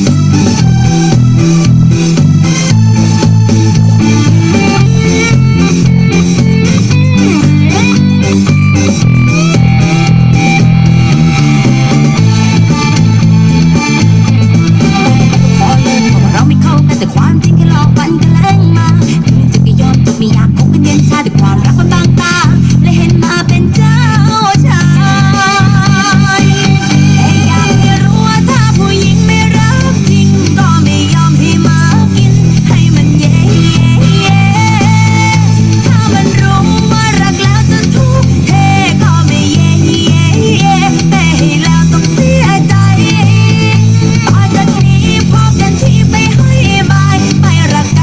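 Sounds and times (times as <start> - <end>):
electric bass guitar: 0.0 - 48.0
recorded song: 0.0 - 48.0.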